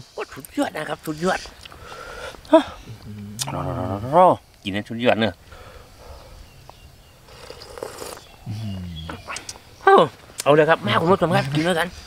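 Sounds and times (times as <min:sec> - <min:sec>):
man humming: 0:02.7 - 0:04.2, 0:08.5 - 0:09.2
man sipping soup: 0:02.9 - 0:03.9, 0:06.2 - 0:09.6.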